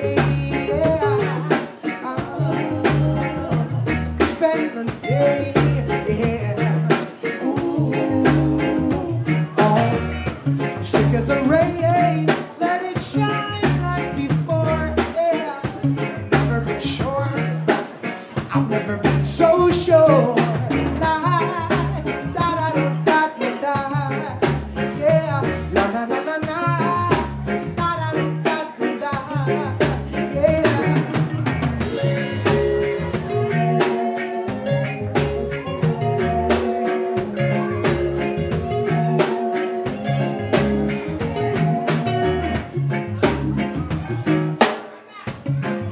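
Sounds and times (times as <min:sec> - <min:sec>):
man singing: 0:00.0 - 0:45.3
reggae band playing: 0:00.0 - 0:45.9.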